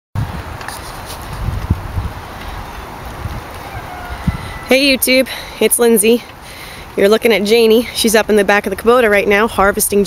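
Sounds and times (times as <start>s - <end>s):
steady outdoor hiss: 0.2s - 10.0s
wind buffeting microphone: 0.2s - 10.0s.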